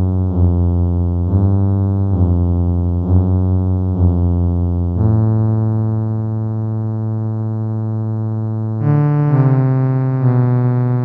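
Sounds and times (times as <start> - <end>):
sustained synthesizer chord: 0.0 - 11.0.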